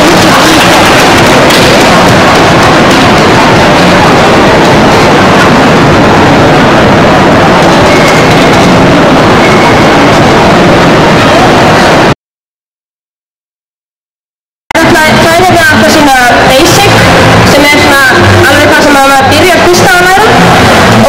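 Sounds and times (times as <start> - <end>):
distorted crowd din: 0.0 - 12.2, 14.7 - 21.0.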